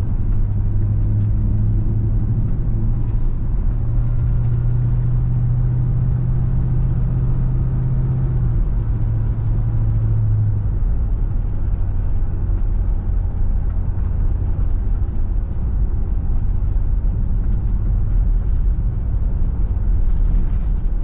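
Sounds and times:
car engine hum: 0.0s - 21.0s
tyre road noise: 0.0s - 21.0s.

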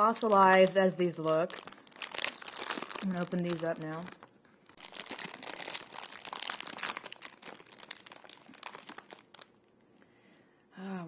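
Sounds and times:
plastic bag crinkling: 0.0s - 9.8s.

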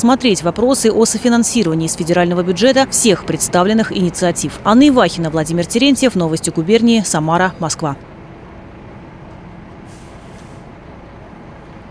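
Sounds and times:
low rumble of traffic: 0.0s - 11.9s
brief hiss: 9.8s - 10.7s.

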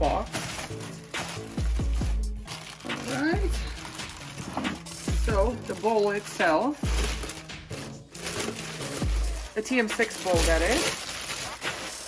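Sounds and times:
background music: 0.0s - 12.0s
plastic wrapping crinkling: 0.0s - 12.0s.

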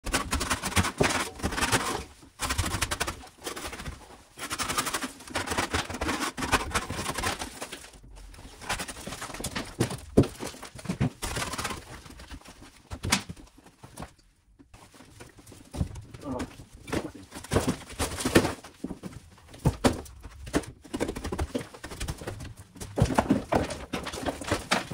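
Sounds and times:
plaster crumbling: 0.0s - 14.2s, 14.8s - 24.9s
knocking of breaking pieces: 15.7s - 24.9s.

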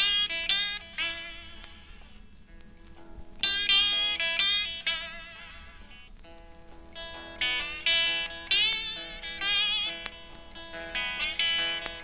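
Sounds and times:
faint guitar plucks: 0.0s - 12.0s
guitar chord ringing: 0.0s - 12.0s
guitar strumming: 0.0s - 12.0s.

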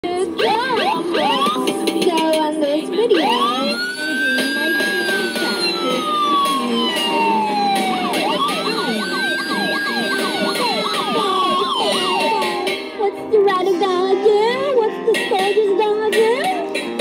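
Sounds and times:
police siren wailing: 0.3s - 2.0s, 3.0s - 13.0s.

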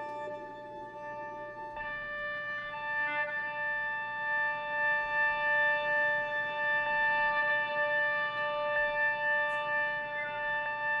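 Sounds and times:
violin bowed note: 0.0s - 11.0s.

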